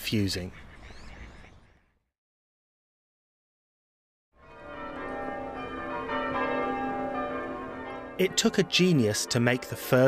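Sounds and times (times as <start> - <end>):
church bells ringing: 4.4 - 10.0.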